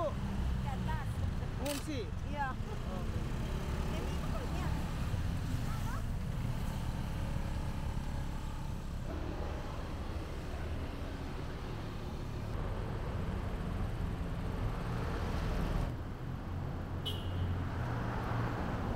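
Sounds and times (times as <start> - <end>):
traffic engines rumbling: 0.0 - 18.9.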